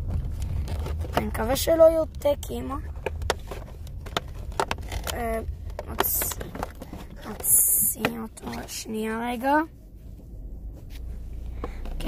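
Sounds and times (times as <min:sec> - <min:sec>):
packaging and clothing rustling: 0:02.9 - 0:09.1.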